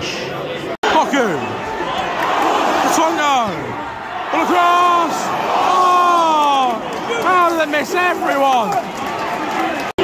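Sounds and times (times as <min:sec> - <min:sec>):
crowd noise: 0:00.0 - 0:10.0
spectator shouting: 0:00.8 - 0:09.9.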